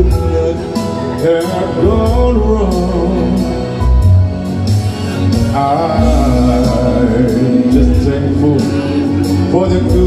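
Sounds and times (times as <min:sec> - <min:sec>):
man singing into microphone: 0:00.0 - 0:04.0, 0:05.4 - 0:10.0
backing music: 0:00.0 - 0:10.0.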